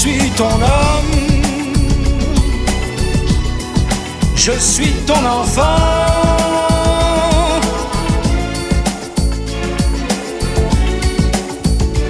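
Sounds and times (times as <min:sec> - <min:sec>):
instrumental pop ballad: 0:00.0 - 0:12.0.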